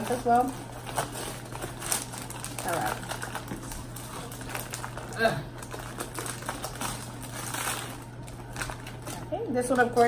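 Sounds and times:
plastic pouch crinkling: 0.0 - 10.0.

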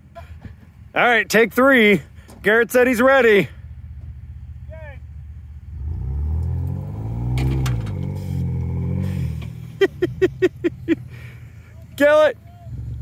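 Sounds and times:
vehicle engines revving: 0.5 - 13.0.

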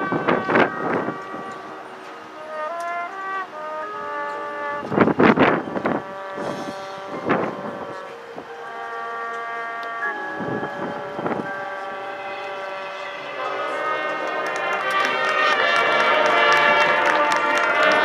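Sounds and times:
marching band brass chords: 0.0 - 18.0.

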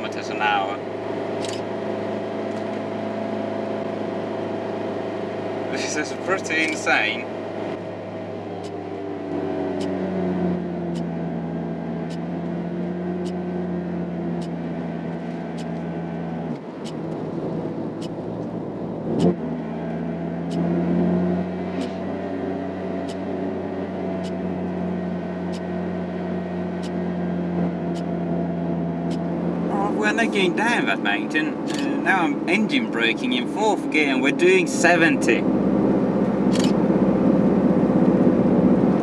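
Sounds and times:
van engine under heavy throttle: 0.0 - 39.0
light ticks: 8.6 - 8.8, 10.9 - 11.1, 15.2 - 15.9, 18.0 - 18.5, 23.0 - 23.2, 26.8 - 27.0, 27.9 - 28.1, 29.1 - 29.3.

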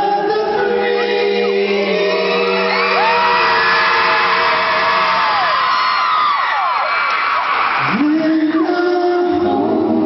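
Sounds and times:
male vocal group singing a cappella: 0.0 - 4.9, 7.8 - 10.0
crowd cheering and whooping: 1.9 - 8.8.

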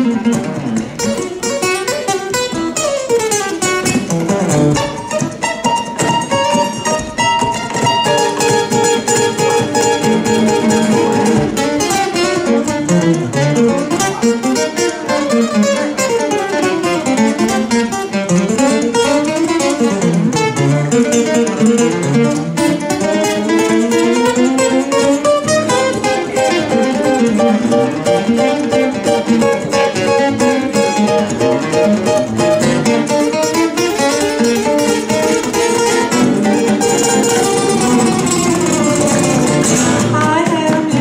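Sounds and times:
acoustic guitar melody: 0.0 - 41.0
acoustic guitar strumming rhythm: 0.0 - 41.0.

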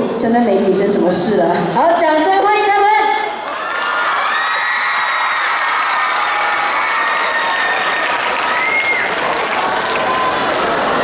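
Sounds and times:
audience applauding and cheering: 3.4 - 11.0.

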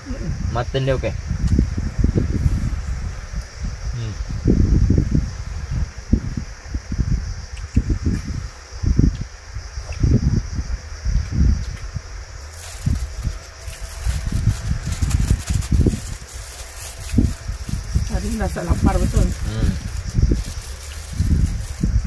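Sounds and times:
wind buffeting microphone: 0.0 - 22.0
plastic crinkling: 12.4 - 22.0.

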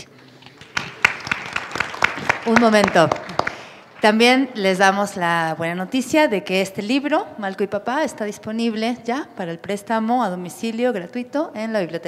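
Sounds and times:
small group applauding: 0.2 - 4.2.

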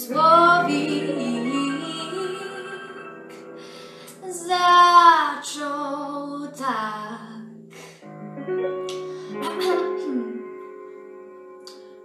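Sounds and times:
woman singing: 0.0 - 3.4, 4.1 - 7.6, 9.4 - 10.4.

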